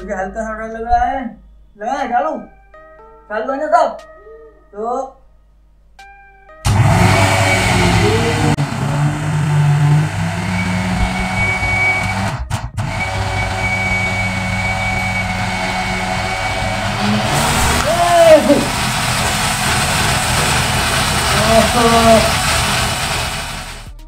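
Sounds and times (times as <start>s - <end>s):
mixer grinder humming: 6.7s - 24.0s.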